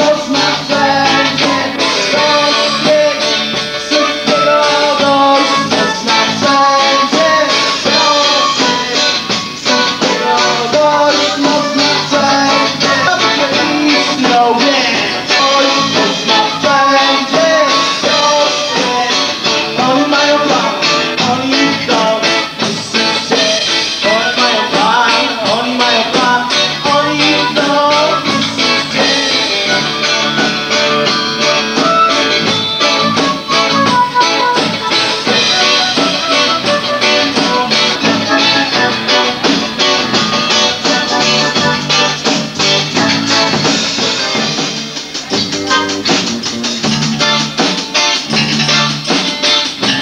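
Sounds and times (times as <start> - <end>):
drum kit beat: 0.0 - 50.0
electric guitar: 0.0 - 50.0.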